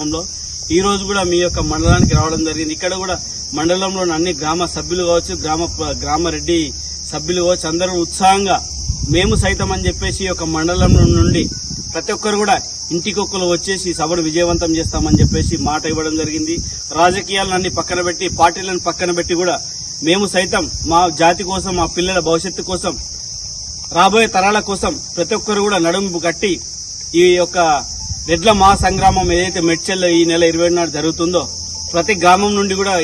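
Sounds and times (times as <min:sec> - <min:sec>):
man speaking: 0:00.0 - 0:23.0, 0:23.9 - 0:33.0
crickets chirring: 0:00.0 - 0:33.0
high-pitched insect chorus: 0:00.0 - 0:33.0.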